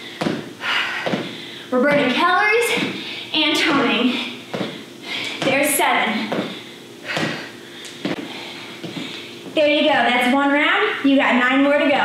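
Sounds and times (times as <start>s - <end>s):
feet landing on tiled floor: 0.2s - 2.1s, 6.2s - 9.2s.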